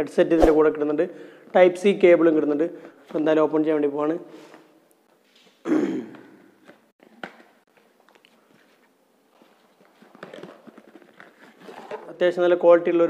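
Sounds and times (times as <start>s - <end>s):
cardboard rustling and scraping: 8.6s - 12.1s.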